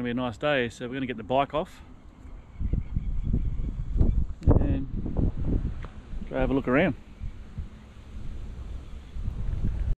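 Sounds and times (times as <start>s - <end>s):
wind buffeting microphone: 2.3s - 10.0s.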